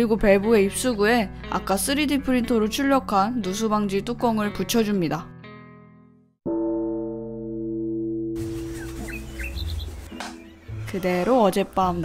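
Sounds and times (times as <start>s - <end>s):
falling bird chirps: 8.4s - 10.9s.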